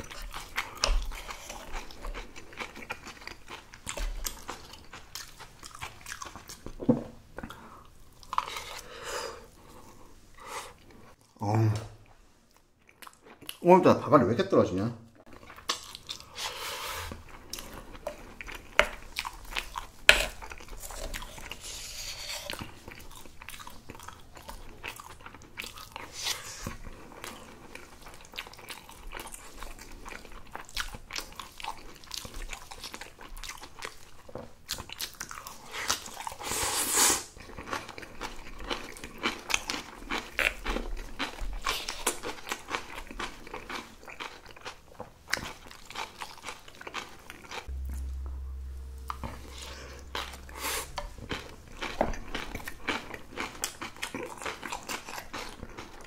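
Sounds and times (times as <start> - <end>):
crunchy chewing: 0.0 - 6.8, 37.4 - 47.7, 49.5 - 56.0.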